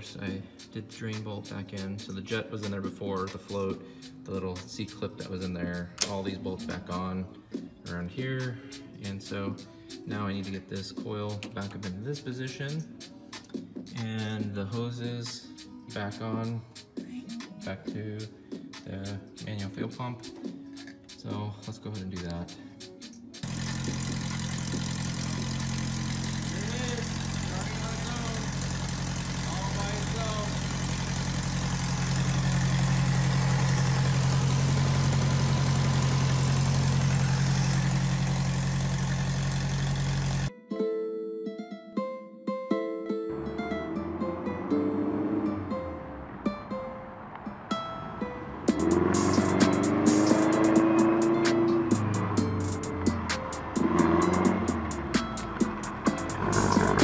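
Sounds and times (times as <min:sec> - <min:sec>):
car engine running: 0:23.4 - 0:40.5, 0:43.3 - 0:46.8, 0:48.2 - 0:57.0
outro music: 0:42.7 - 0:57.0.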